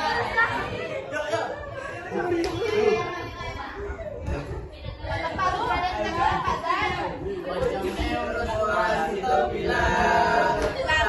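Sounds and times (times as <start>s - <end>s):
teenagers singing unaccompanied: 0.0s - 3.6s, 4.2s - 11.0s
classroom chatter: 0.0s - 11.0s.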